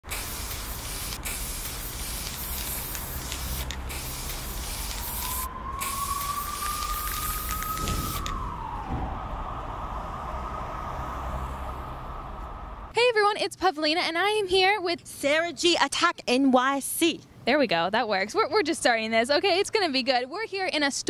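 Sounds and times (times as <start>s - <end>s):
spray can hissing: 0.0s - 8.3s
rising tone: 4.4s - 12.9s.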